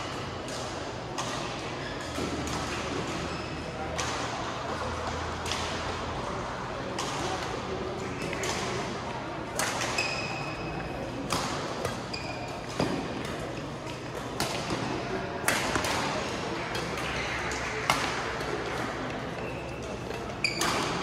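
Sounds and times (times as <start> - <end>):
murmur of voices: 0.0 - 21.0
rackets striking shuttlecock: 9.5 - 21.0
shoe squeaks on court: 12.0 - 12.7, 19.4 - 21.0.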